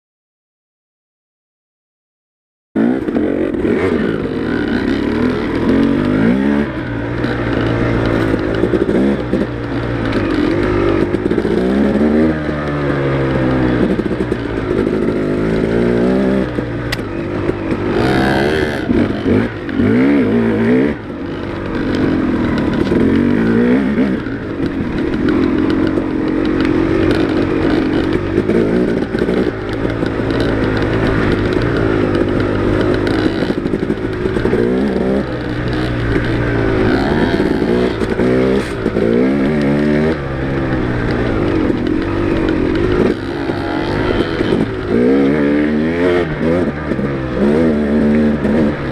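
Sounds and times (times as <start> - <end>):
dirt bike engine revving: 2.8 - 48.9.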